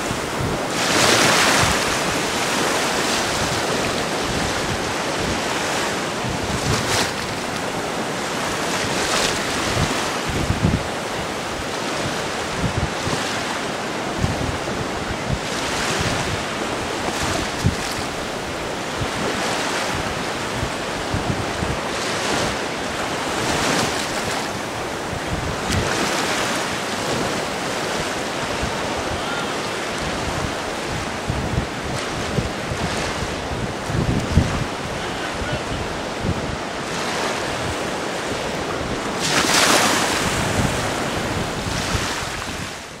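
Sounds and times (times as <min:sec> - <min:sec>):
surf washing on sandy beach: 0:00.0 - 0:43.0
wind buffeting microphone: 0:00.0 - 0:43.0.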